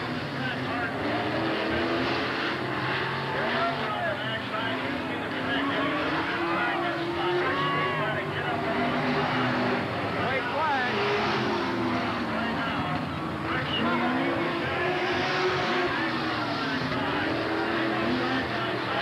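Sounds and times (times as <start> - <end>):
indistinct voices: 0.0 - 19.0
racing car engines passing: 0.0 - 19.0.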